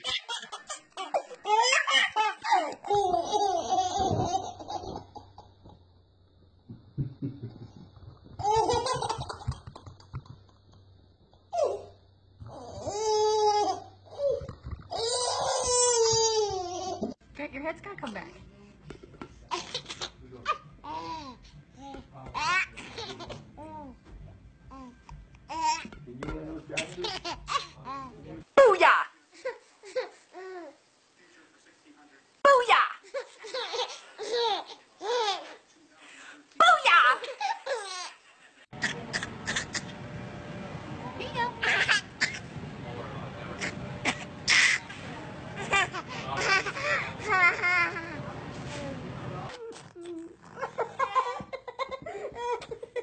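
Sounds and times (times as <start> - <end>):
baby laughing: 0.0 - 5.5, 8.4 - 10.0, 19.5 - 21.4, 22.4 - 23.4, 26.8 - 28.2, 38.8 - 39.9, 41.6 - 42.4, 43.6 - 44.8, 45.6 - 48.2
baby squealing and shrieking: 12.5 - 17.0.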